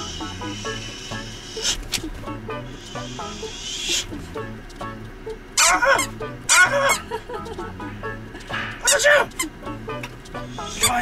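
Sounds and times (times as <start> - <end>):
squeaky dog toy squeaks: 5.6 - 7.1, 8.8 - 9.6, 10.5 - 11.0.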